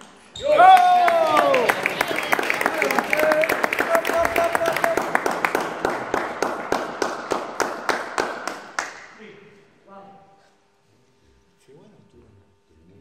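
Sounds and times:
spectators clapping: 0.6 - 9.2.

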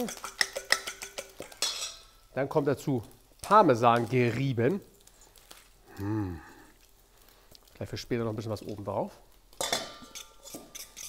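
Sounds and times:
fork scraping bowl: 0.0 - 2.0, 10.0 - 11.0
fork clinking against metal bowl: 0.0 - 2.1, 9.6 - 11.0.

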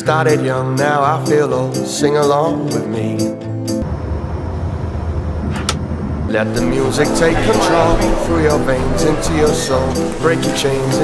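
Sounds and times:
airliner cabin rumble: 3.8 - 11.0.

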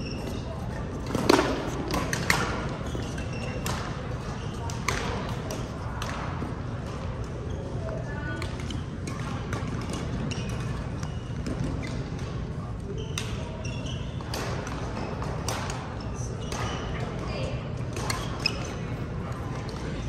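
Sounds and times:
shoes squeaking on court: 0.0 - 5.8, 7.2 - 20.0
rackets hitting shuttlecock: 0.2 - 7.4, 8.4 - 20.0.

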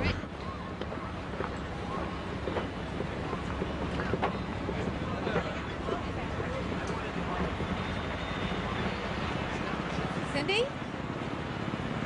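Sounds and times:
faint voices: 0.0 - 11.4
ferry engine rumble: 0.0 - 12.0.

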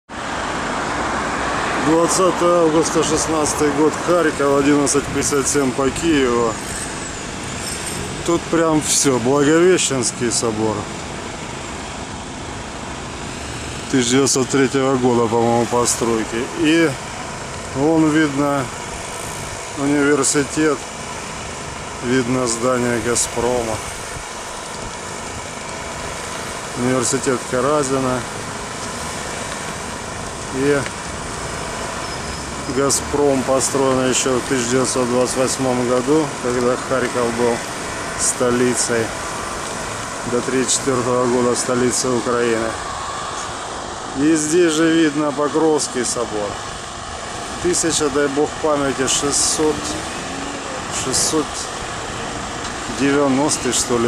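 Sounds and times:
road traffic: 0.0 - 54.0.

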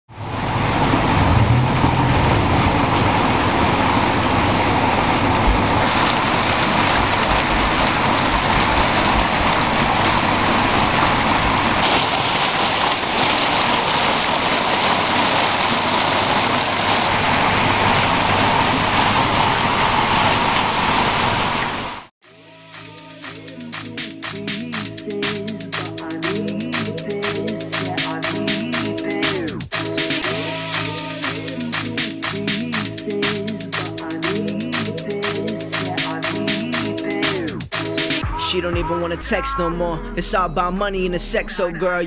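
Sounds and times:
low rumble: 0.2 - 11.8
fountain water splashing: 0.2 - 22.1.

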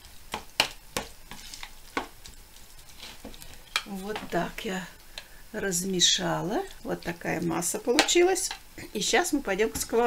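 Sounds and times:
fork stirring wet batter: 0.0 - 4.3.

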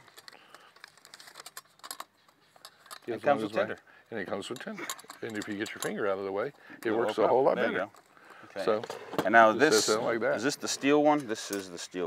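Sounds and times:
metal camp stove clicking: 4.5 - 6.0.

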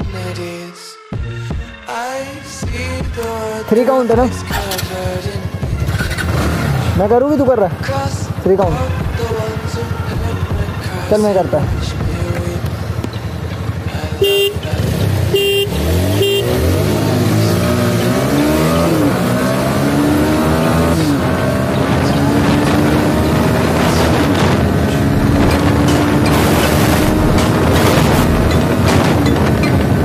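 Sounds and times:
motorcycle engine accelerating: 4.1 - 30.0
horn toots: 14.2 - 17.1.

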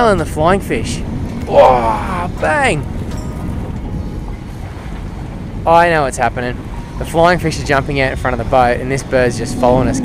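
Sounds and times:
boat engine low rumble: 0.0 - 10.0
wind noise on microphone: 0.0 - 10.0.

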